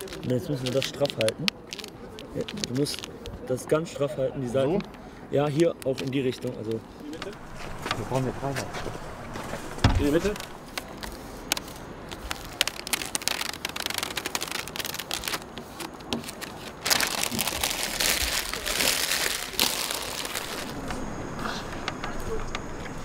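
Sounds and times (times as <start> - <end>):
vinyl sticker crinkling: 0.0 - 3.8, 5.6 - 21.0.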